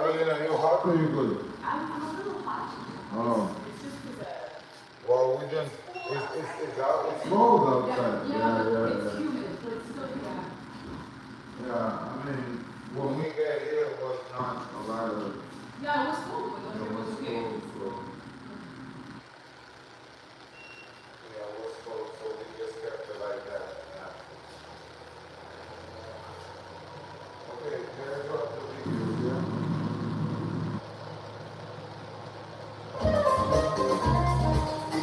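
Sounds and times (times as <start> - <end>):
quiet voices in a large room: 0.0 - 35.0
low steady rumble: 21.2 - 33.0
music with a beat: 33.0 - 35.0.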